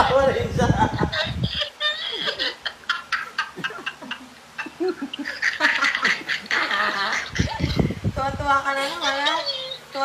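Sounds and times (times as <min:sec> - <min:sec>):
man laughing hysterically: 0:00.2 - 0:08.1.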